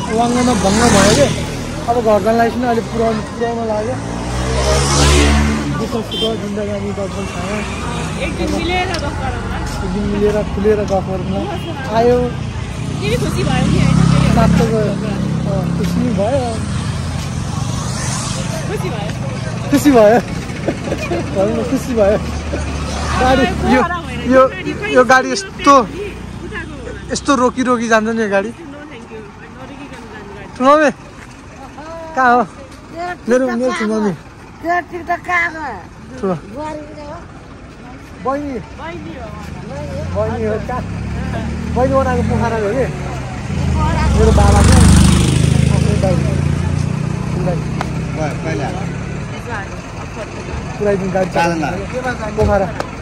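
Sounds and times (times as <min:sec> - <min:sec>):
people's voices: 0:00.0 - 0:53.0
street traffic: 0:00.0 - 0:53.0
vehicle engine hum: 0:00.0 - 0:53.0
people talking: 0:05.1 - 0:16.7, 0:20.9 - 0:30.8.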